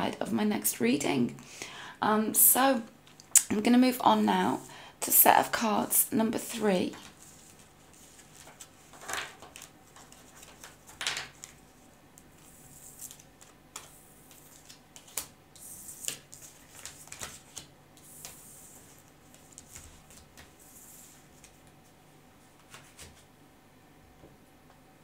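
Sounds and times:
cards clicking and sliding on table: 0:12.4 - 0:21.7, 0:22.6 - 0:23.2.

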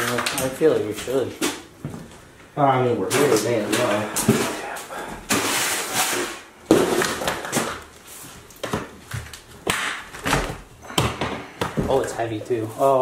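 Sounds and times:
objects rustling and clattering: 0:00.0 - 0:13.0.

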